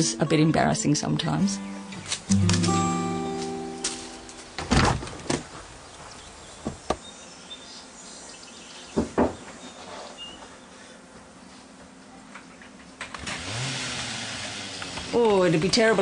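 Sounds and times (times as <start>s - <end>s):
background hiss: 0.0s - 16.0s
sharp knocks: 9.0s - 9.4s.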